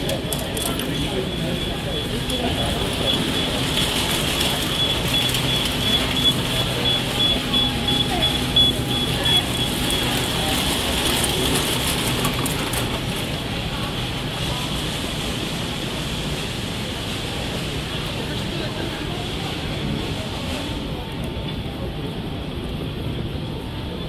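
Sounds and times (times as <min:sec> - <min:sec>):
luggage trolleys rolling and rattling: 0:00.0 - 0:24.0
voices of passers-by: 0:00.0 - 0:24.0
high beeping: 0:00.8 - 0:10.6.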